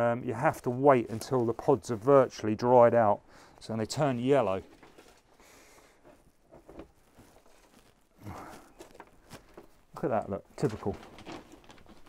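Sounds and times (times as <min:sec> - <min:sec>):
hands rustling compost: 0:00.4 - 0:12.0.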